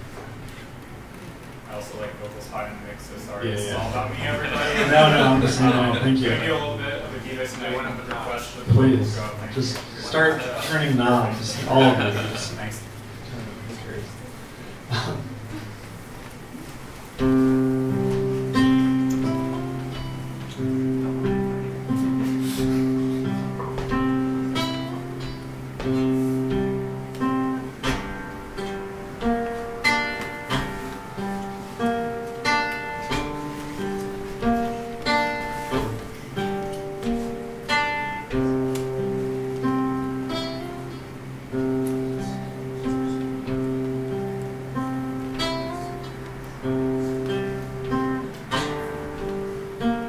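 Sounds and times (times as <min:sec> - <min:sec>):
acoustic guitar picked notes: 0:03.6 - 0:50.0.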